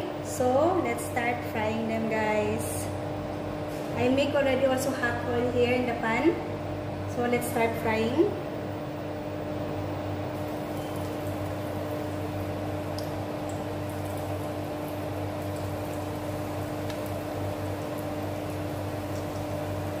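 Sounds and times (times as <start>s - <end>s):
food sizzling in hot oil: 10.4s - 20.0s.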